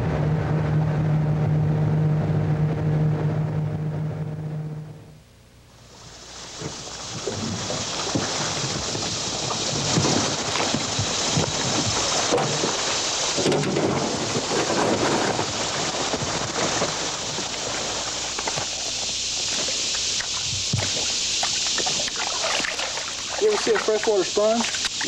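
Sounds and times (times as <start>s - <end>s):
steady rushing noise: 5.8s - 25.0s
water splashing: 6.0s - 25.0s
knocks and crackles: 6.5s - 22.2s.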